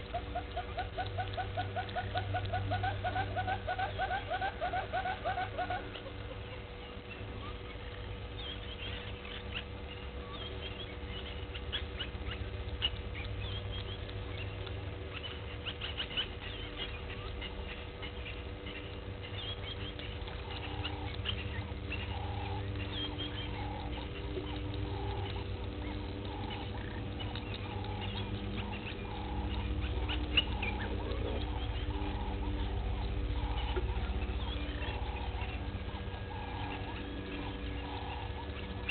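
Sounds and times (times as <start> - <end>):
bird calling: 0.0 - 38.9
faint steady hum: 0.0 - 38.9
low rumble: 4.6 - 38.9.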